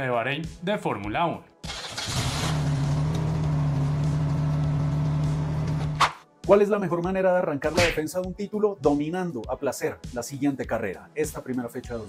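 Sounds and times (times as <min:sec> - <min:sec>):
car engine idling: 0:01.8 - 0:05.9.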